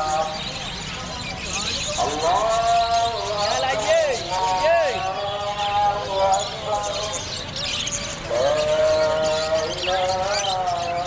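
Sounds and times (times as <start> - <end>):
budgerigars chattering: 0.0 - 11.0.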